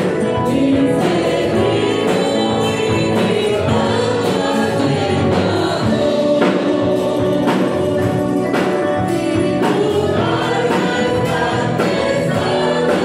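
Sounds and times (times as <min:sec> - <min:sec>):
congregation singing a hymn: 0:00.0 - 0:13.0
strummed guitars: 0:00.0 - 0:13.0.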